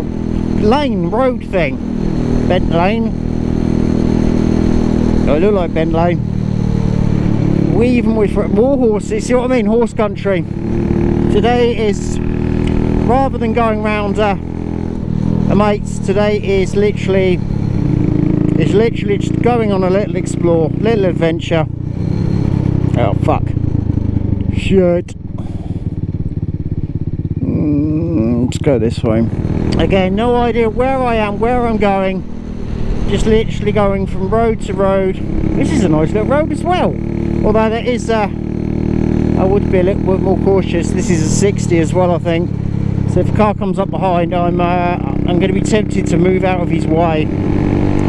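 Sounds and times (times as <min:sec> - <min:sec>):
motorcycle engine running: 0:00.0 - 0:48.0.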